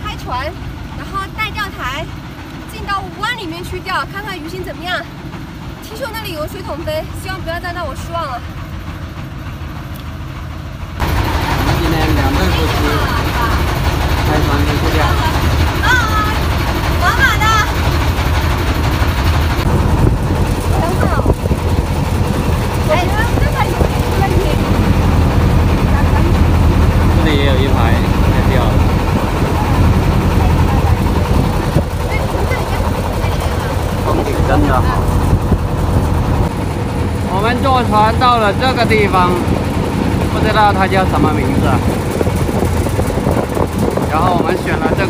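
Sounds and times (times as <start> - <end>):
boat engine droning: 0.0 - 45.0.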